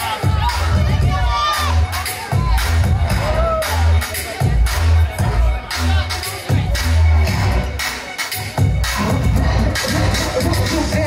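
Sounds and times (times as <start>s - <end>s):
crowd cheering and shouting: 0.0s - 11.0s
dance music with heavy bass: 0.0s - 11.0s.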